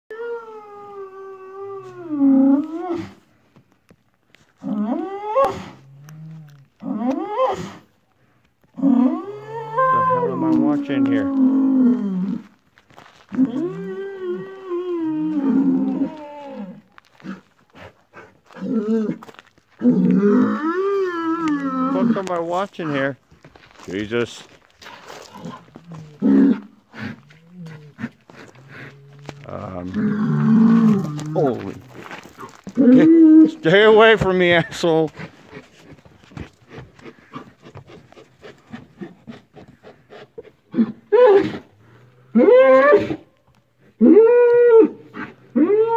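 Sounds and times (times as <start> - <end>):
bull bellowing: 4.6 - 7.9, 8.8 - 12.6, 13.3 - 17.5, 18.5 - 23.1, 25.0 - 36.1, 40.7 - 43.3, 43.9 - 45.9.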